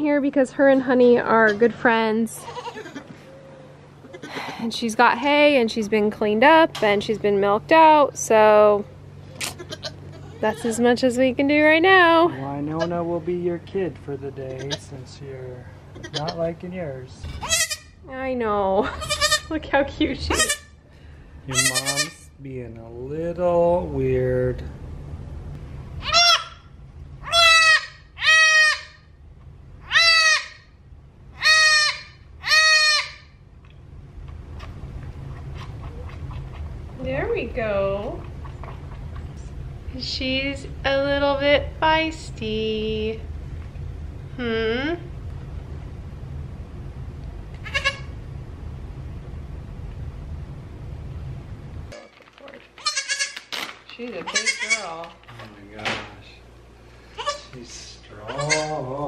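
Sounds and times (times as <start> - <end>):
low steady rumble: 0.0 - 59.0
goat kid bleating: 2.4 - 3.2, 9.4 - 10.8, 14.5 - 14.9, 15.9 - 16.5, 17.4 - 17.9, 18.8 - 19.6, 20.3 - 20.7, 21.5 - 22.3, 26.0 - 26.6, 27.2 - 29.0, 29.9 - 30.6, 31.4 - 33.2, 47.6 - 48.1, 52.8 - 53.5, 54.2 - 55.1, 57.1 - 57.6, 58.2 - 58.8.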